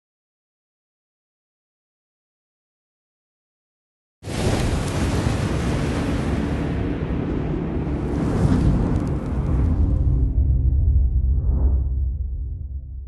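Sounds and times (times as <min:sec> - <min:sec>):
rumbling rush of noise: 0:04.7 - 0:13.0.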